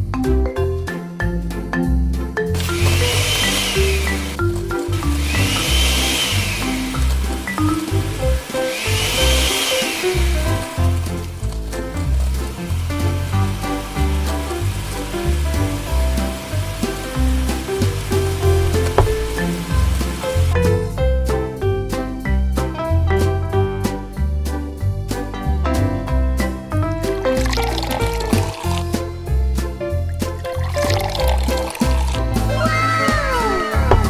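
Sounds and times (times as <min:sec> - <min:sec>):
background music: 0:00.0 - 0:34.0
electric blender motor whine: 0:02.6 - 0:04.4, 0:05.0 - 0:11.0, 0:15.7 - 0:20.5.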